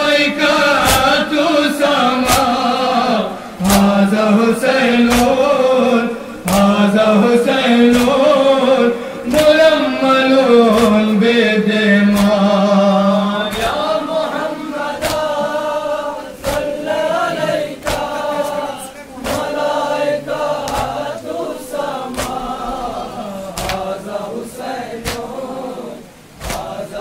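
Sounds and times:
men chanting together: 0.0s - 27.0s.

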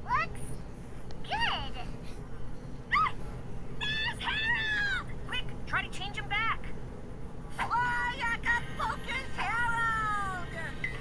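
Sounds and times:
high-pitched cry: 3.8s - 5.1s.

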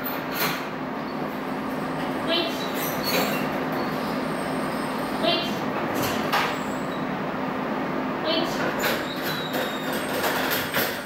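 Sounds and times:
steady hum: 0.0s - 8.8s
short high squeaks: 2.6s - 5.0s.

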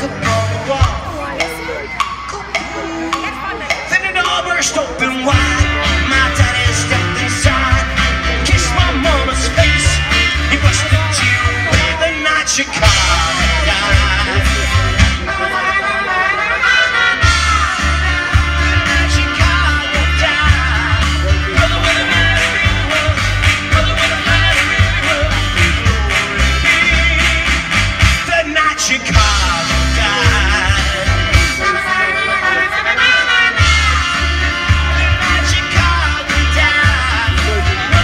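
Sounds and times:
live rock band playing: 0.0s - 38.0s.

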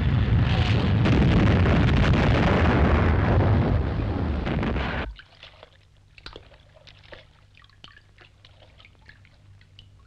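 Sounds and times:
low steady hum: 0.0s - 10.0s
water trickling from a pipe: 5.1s - 10.0s.

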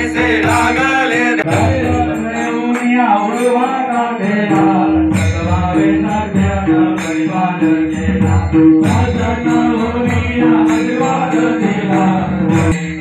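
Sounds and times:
chanted devotional singing: 0.0s - 13.0s
steady rhythm with drone: 0.0s - 13.0s.

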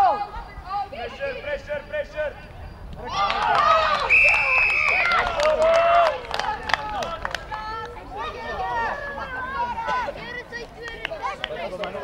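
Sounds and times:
referee's whistle: 4.0s - 5.2s.

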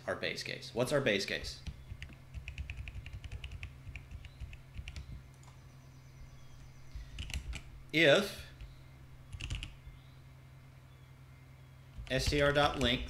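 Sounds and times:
typing on computer keyboard: 1.6s - 5.2s, 7.2s - 7.6s, 9.3s - 9.7s.

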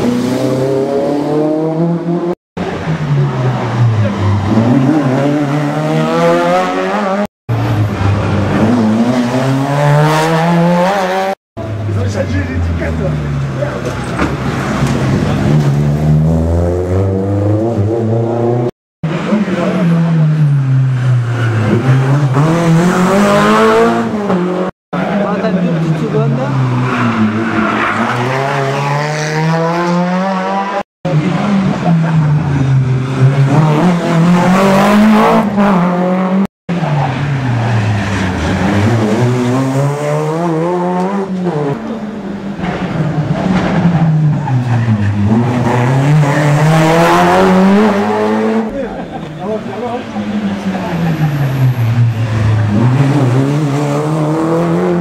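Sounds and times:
rally car engines revving: 0.0s - 55.0s.

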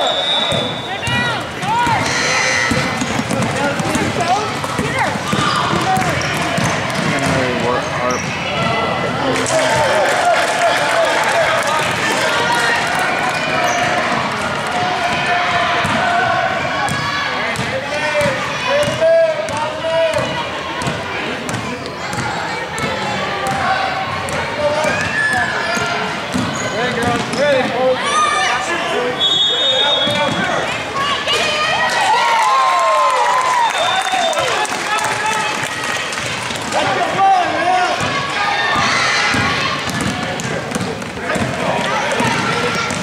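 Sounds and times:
basketball dribbling on hardwood: 2.7s - 7.3s, 38.8s - 41.6s.

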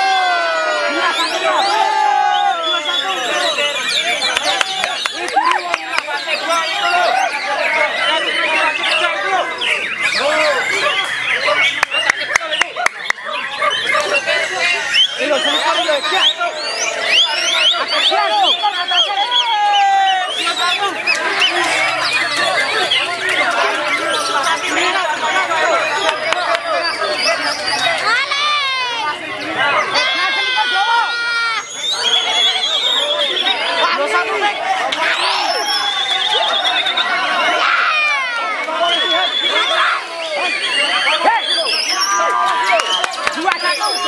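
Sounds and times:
birds singing whistled phrases: 0.0s - 30.4s, 31.0s - 44.0s
people shouting: 0.0s - 44.0s.

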